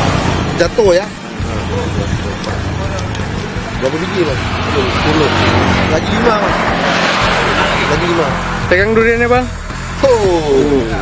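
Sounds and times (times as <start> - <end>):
vehicle engines rumbling: 0.0 - 11.0.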